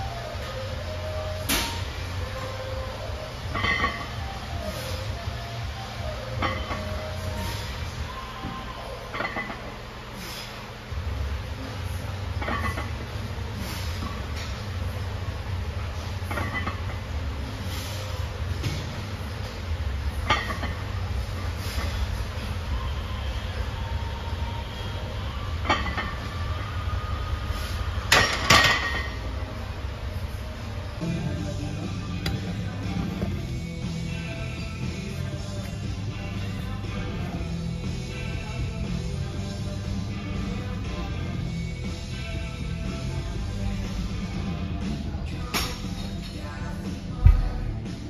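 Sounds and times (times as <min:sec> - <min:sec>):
gym fans rumbling: 0:00.0 - 0:48.0.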